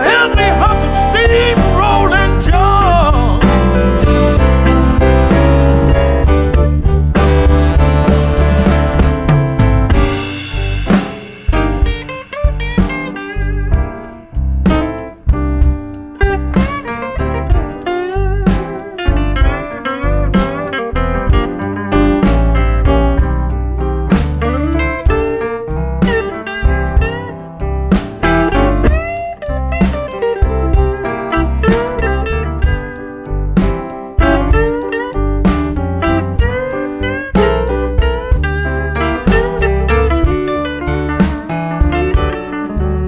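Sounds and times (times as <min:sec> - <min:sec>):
electric guitar solo: 0:00.0 - 0:09.4, 0:10.0 - 0:15.2, 0:15.9 - 0:23.2, 0:24.1 - 0:43.0
blues band playing: 0:00.0 - 0:43.0
steady drum beat: 0:00.0 - 0:43.0.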